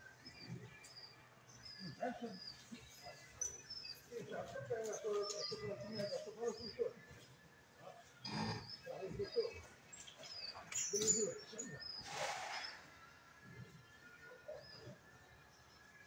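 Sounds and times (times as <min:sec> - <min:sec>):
small birds chirping: 0:00.0 - 0:16.0
people talking: 0:04.1 - 0:07.1, 0:08.9 - 0:09.7, 0:10.8 - 0:11.8.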